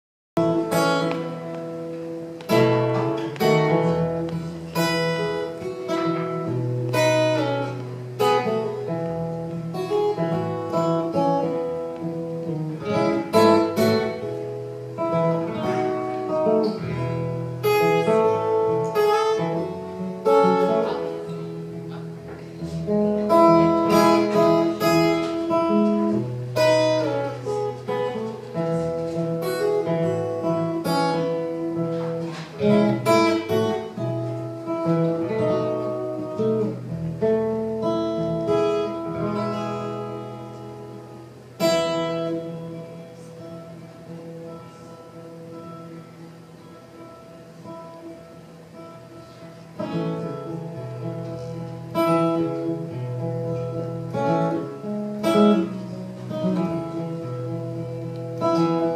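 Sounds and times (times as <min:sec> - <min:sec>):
acoustic guitar chords: 0:00.4 - 0:58.9.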